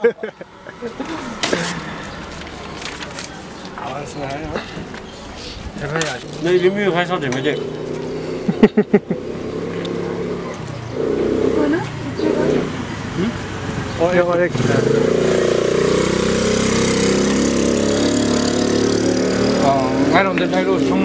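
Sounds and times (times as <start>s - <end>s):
person laughing: 0.0s - 1.8s, 8.4s - 9.3s
voices: 0.0s - 15.4s, 16.5s - 21.0s.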